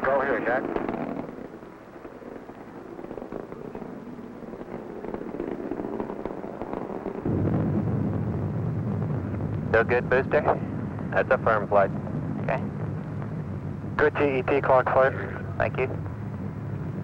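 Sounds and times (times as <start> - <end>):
rocket engine crackling rumble: 0.0 - 17.0.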